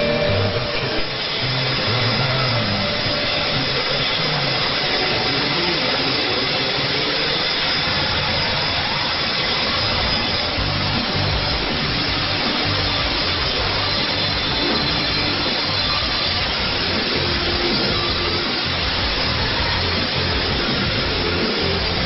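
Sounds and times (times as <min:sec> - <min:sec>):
shortwave radio hiss and crackle: 0:00.0 - 0:22.0.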